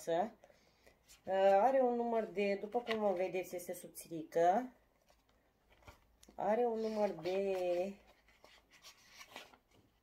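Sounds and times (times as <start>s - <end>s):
paper pages rustling: 1.0s - 3.5s, 5.0s - 10.0s.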